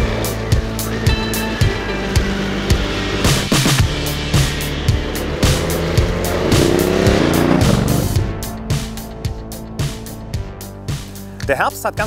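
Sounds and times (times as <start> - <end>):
motorcycle engine accelerating: 0.0 - 10.3.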